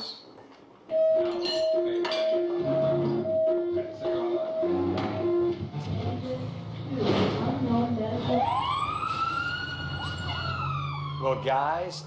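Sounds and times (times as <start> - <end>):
music: 0.9 - 8.5
fire engine siren wailing: 8.2 - 12.0.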